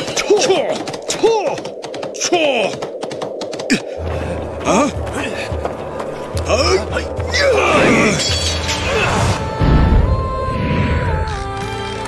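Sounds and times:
galloping hooves: 0.0s - 7.7s.

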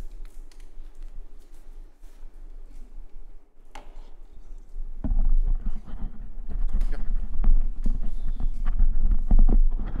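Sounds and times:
microphone handling knocks and rubs: 5.0s - 10.0s.

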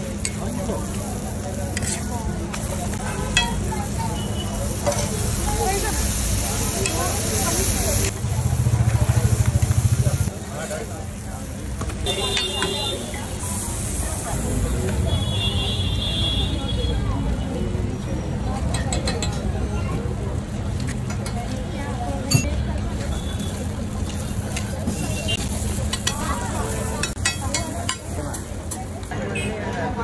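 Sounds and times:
low traffic rumble: 0.0s - 30.0s
metal spatula scraping griddle: 1.7s - 2.2s.

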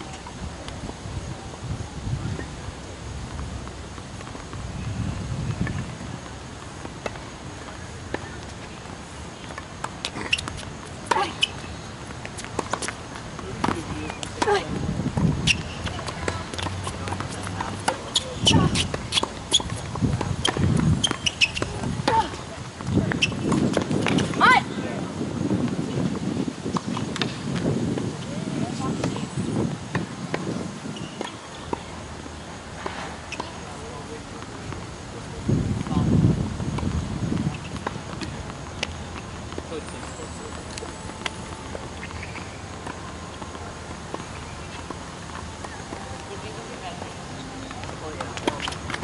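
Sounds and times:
steady outdoor hiss: 0.0s - 49.0s
tennis ball strikes and bounces: 9.4s - 24.4s, 40.7s - 49.0s
shoe squeak: 10.0s - 13.0s, 15.4s - 22.4s, 23.0s - 24.5s, 30.9s - 31.7s, 32.8s - 33.6s, 39.7s - 42.7s, 48.4s - 49.0s.

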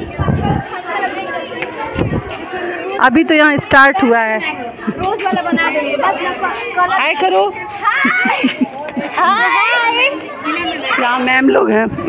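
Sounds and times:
girls chattering: 0.0s - 12.0s.

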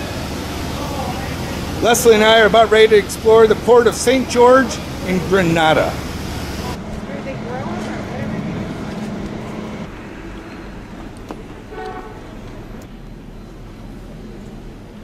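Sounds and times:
faint voices: 0.0s - 9.9s
steady hum: 0.0s - 13.0s
vehicles passing: 0.0s - 15.0s
short car horn toot: 11.7s - 12.3s.

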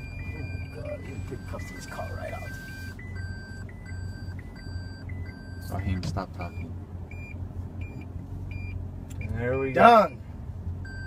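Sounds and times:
parking sensor warning beeps: 0.0s - 10.2s.

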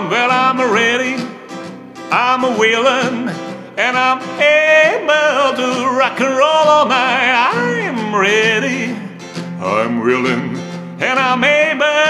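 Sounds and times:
man singing rock and roll: 0.0s - 1.4s, 2.1s - 12.0s
strummed acoustic guitar: 0.0s - 12.0s.

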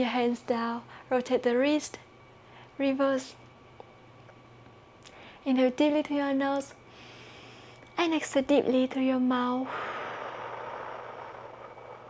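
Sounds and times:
woman exhaling slowly: 9.6s - 12.0s.

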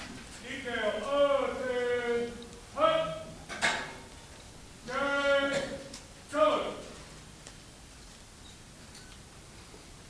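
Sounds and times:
drill commands shouted: 0.4s - 3.4s, 4.8s - 6.9s.

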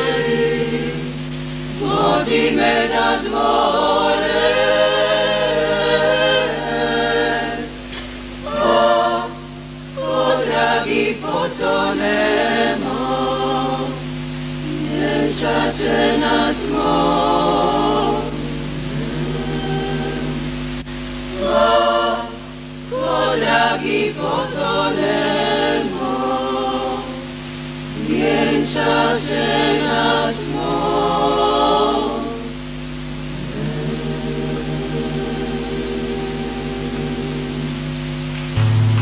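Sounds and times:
women's choir singing: 0.0s - 38.0s
loud low hum: 0.0s - 39.0s.

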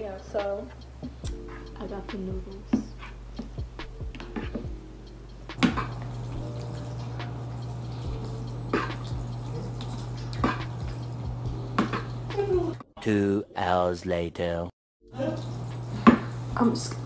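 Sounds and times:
steady low hum: 0.0s - 12.8s.

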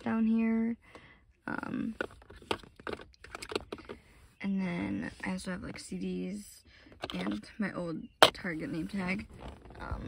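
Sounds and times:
plastic cases clicking and tapping: 1.9s - 4.0s.

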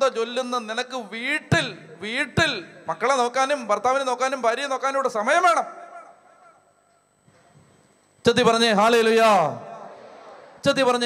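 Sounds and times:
amplified speech: 0.0s - 6.7s, 8.3s - 11.0s.

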